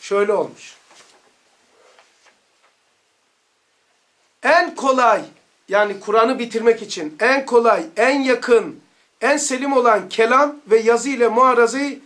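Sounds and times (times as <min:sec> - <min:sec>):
book page turning: 0:00.8 - 0:02.8.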